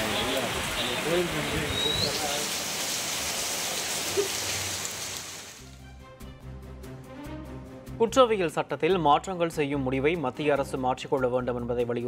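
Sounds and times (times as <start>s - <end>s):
heavy rain on trees and paving: 0.0s - 5.8s.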